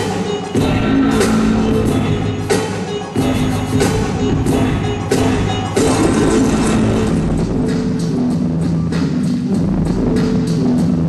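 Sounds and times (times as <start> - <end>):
hip-hop music over speakers: 0.0 - 11.0.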